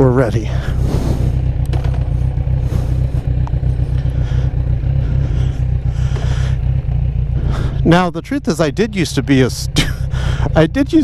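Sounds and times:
motorcycle engine deep rumble: 0:00.0 - 0:11.0.

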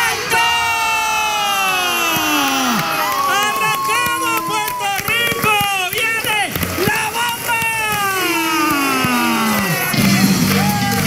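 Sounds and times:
voices yelling excitedly: 0:00.0 - 0:11.0
band with guitar and drums: 0:03.1 - 0:11.0.

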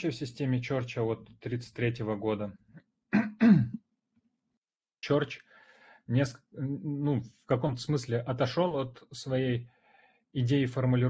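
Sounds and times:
man clearing his throat: 0:03.2 - 0:03.8.

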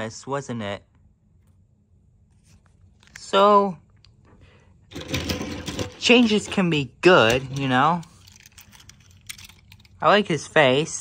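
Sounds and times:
toy train clicking rattle: 0:04.9 - 0:10.1.

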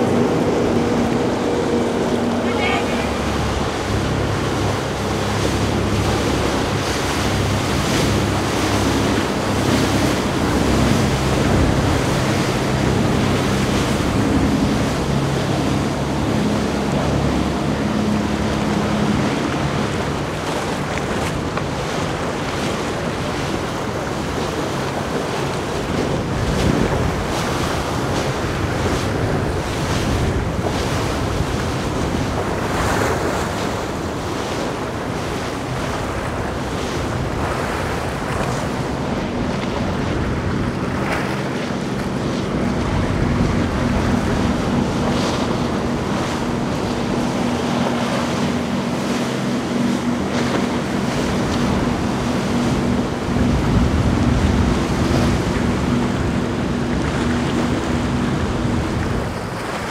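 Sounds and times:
boat engines droning: 0:00.0 - 0:59.9
rush of bow spray and wake: 0:00.0 - 0:59.9
wind buffeting microphone: 0:00.0 - 0:59.9.

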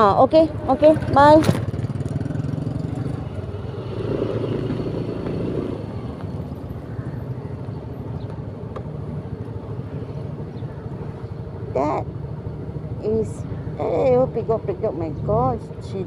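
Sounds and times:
small motorcycle engine running: 0:00.4 - 0:08.3.

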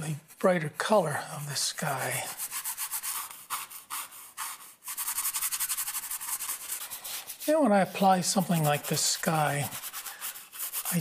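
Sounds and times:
paintbrush scrubbing canvas: 0:01.6 - 0:11.0.

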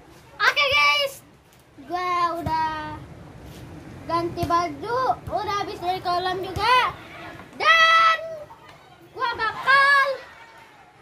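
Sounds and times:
boy speaking: 0:00.4 - 0:03.0, 0:04.1 - 0:08.5, 0:09.2 - 0:10.2.

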